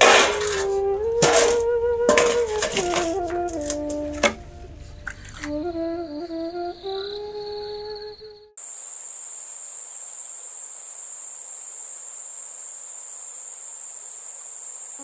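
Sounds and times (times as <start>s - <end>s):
background music sustained note: 0.0s - 8.3s
crickets chirring: 0.0s - 15.0s.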